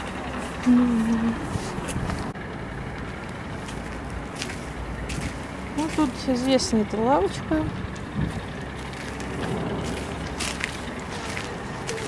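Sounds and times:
low rumble of city noise: 0.0s - 12.0s.

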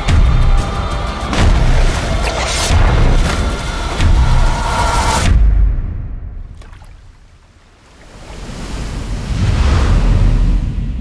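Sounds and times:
sea surf waves: 6.6s - 11.0s.

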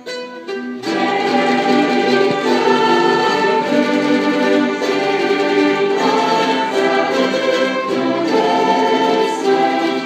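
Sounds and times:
mandolin orchestra chords: 0.0s - 10.0s.

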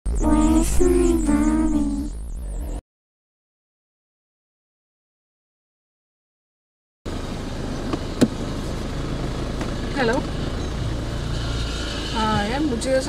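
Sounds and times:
car engine rumble inside cabin: 0.0s - 2.8s, 7.1s - 13.0s.

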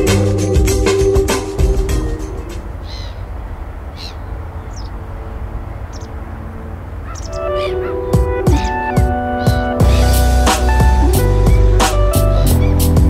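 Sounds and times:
music with plucked notes and drums: 0.0s - 2.6s, 8.1s - 13.0s
gull cries: 2.8s - 3.3s, 3.9s - 5.0s, 7.0s - 13.0s.

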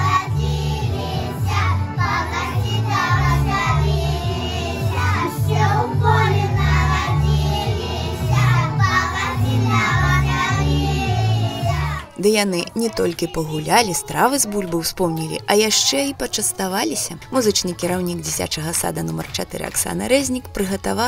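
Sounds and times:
children singing: 0.0s - 12.1s.

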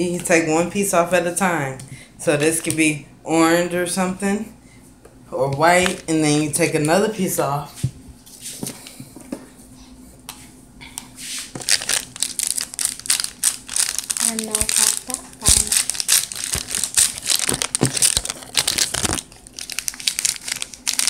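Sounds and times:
paper crinkling: 11.5s - 21.0s.

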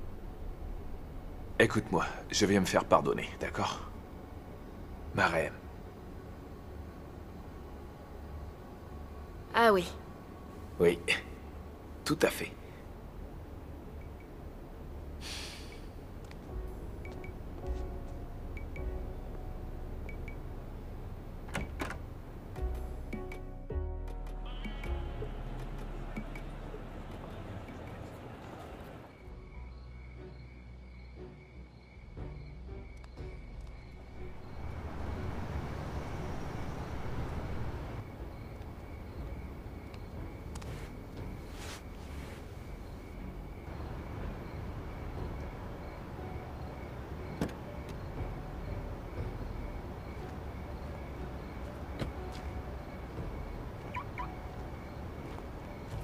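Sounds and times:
low steady rumble: 0.0s - 10.8s, 12.6s - 15.2s, 15.8s - 23.2s, 33.8s - 40.5s
soft background music: 0.0s - 56.0s.

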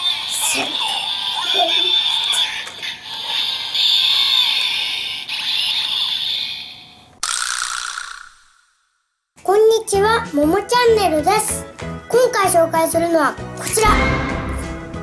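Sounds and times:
hissing electronic toy sound effects: 0.0s - 8.7s.

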